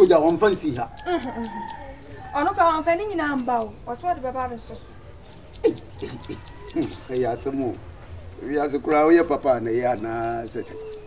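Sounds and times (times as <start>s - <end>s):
lower falling bird calls: 5.3s - 7.8s, 9.8s - 11.0s.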